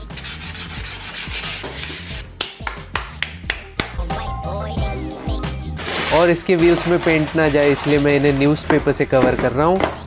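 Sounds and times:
sandpaper scratching wood: 0.0 - 2.2, 5.8 - 8.4.

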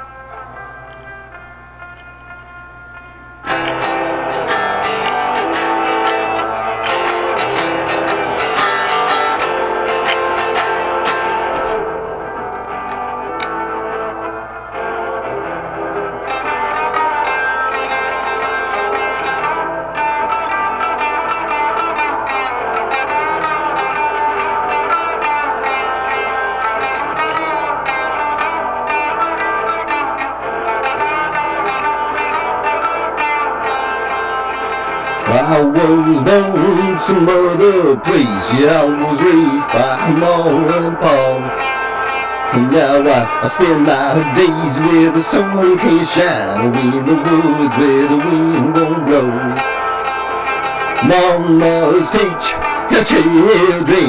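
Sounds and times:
solo electric guitar: 0.0 - 54.0.

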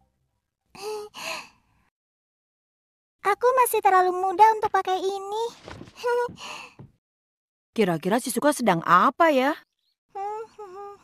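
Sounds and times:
cartoon girl breathy voice: 0.8 - 1.5, 10.2 - 11.0.

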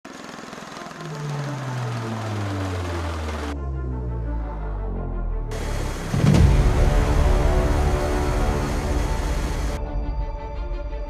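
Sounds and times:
background music low sustained note: 0.5 - 11.0.

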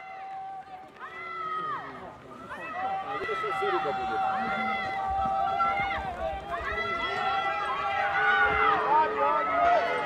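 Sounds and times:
people shouting encouragement: 0.0 - 10.0.

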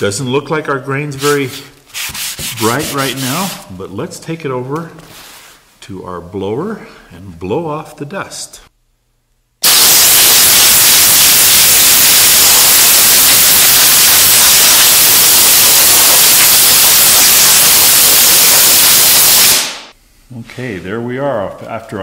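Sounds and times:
compressed air hissing: 9.6 - 20.0.

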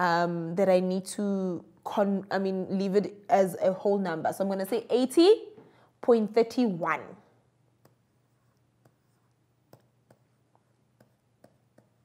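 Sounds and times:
stylus tapping on writing tablet: 8.8 - 10.4, 11.0 - 12.0.

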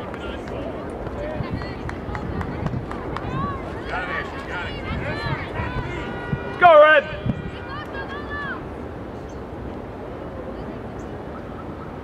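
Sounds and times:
distant voices calling: 0.1 - 9.6.

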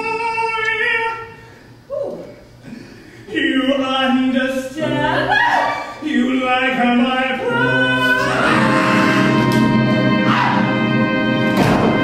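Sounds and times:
musical accompaniment: 6.9 - 12.0.

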